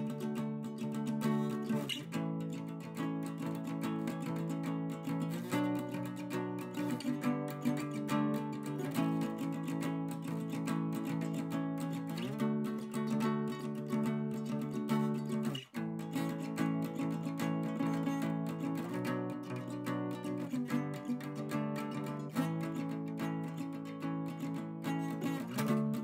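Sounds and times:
acoustic guitar chords: 0:00.0 - 0:26.0.

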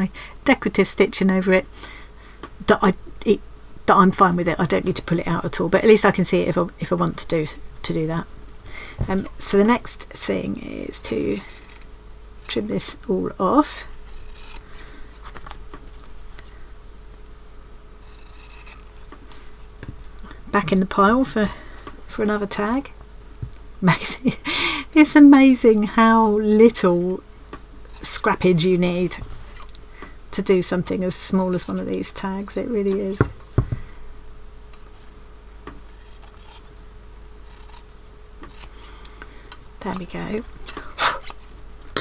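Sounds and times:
scissors cutting fabric: 0:13.9 - 0:14.6, 0:18.0 - 0:18.9, 0:35.8 - 0:36.6.

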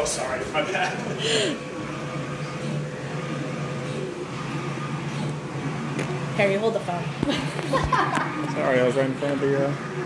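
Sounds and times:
printer mechanical hum: 0:00.0 - 0:10.0.

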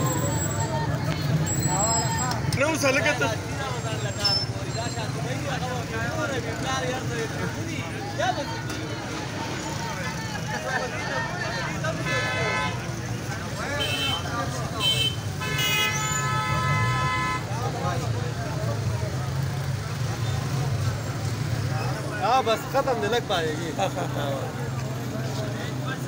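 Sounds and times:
crowd chatter: 0:00.0 - 0:26.0
traffic rumble: 0:00.0 - 0:26.0
vehicle horns honking: 0:11.9 - 0:13.0, 0:13.6 - 0:17.8.

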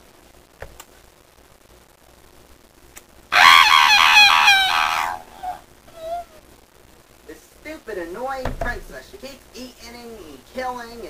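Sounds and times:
person screaming: 0:03.3 - 0:06.4.

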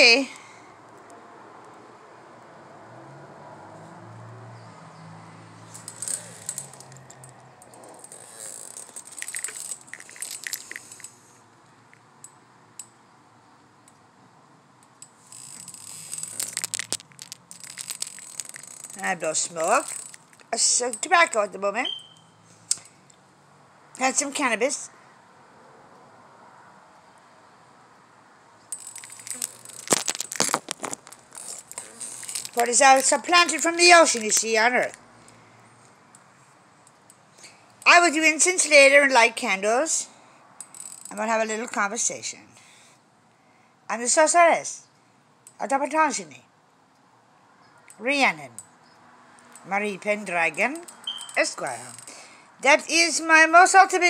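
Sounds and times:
small hard objects clinking: 0:05.8 - 0:11.1, 0:15.5 - 0:20.5, 0:28.7 - 0:35.0.

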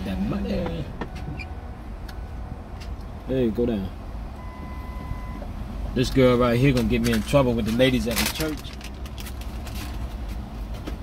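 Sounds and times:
electronic beep: 0:04.4 - 0:05.4.

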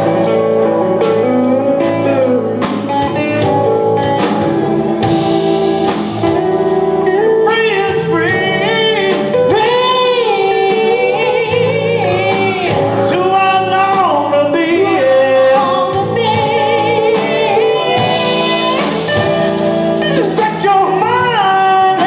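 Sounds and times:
drum kit with cymbals: 0:00.0 - 0:22.0
electric guitars: 0:00.0 - 0:22.0
woman singing with vibrato: 0:07.9 - 0:19.4.

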